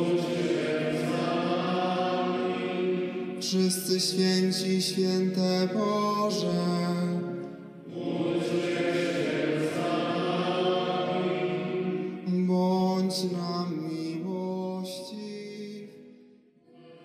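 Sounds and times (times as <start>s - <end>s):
voices chanting long notes: 0.0s - 4.8s, 5.8s - 13.6s.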